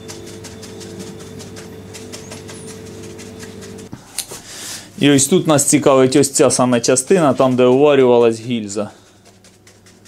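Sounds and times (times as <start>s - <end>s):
brush scrubbing soapy water: 0.0s - 3.9s, 4.8s - 10.0s
steady mechanical hum: 0.0s - 10.0s.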